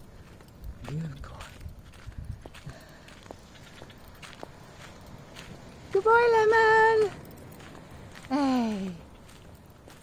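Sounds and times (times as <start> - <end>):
footsteps on concrete: 0.2 - 6.1.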